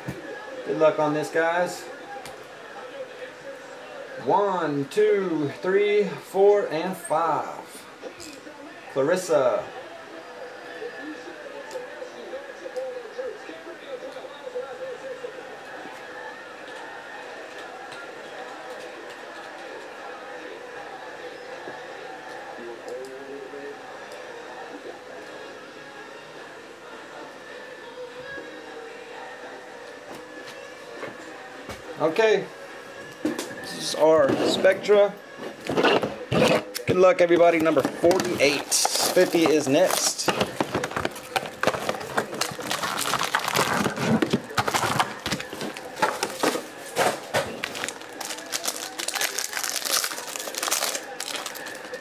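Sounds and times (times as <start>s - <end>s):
room noise: 7.2s - 52.0s
indistinct background voices: 7.6s - 52.0s.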